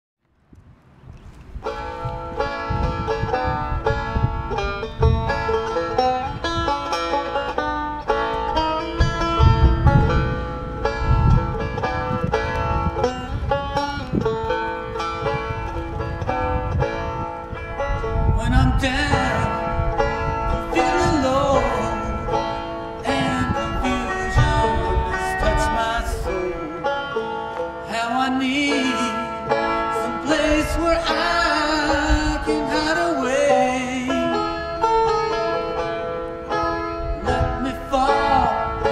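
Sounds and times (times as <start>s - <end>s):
banjo picking bright notes: 1.6s - 38.9s
low rumble: 8.0s - 26.7s.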